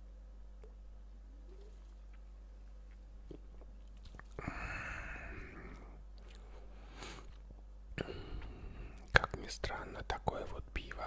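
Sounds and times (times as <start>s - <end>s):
breathy exhale: 4.4s - 6.0s.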